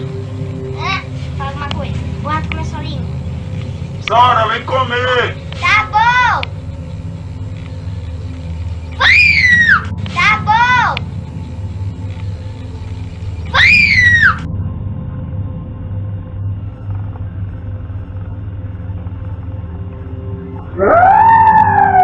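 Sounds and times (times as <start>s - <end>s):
low steady drone: 0.0s - 22.0s.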